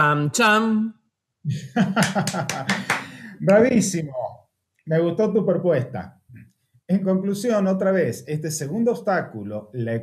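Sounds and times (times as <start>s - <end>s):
man laughing in bursts: 1.5s - 3.2s.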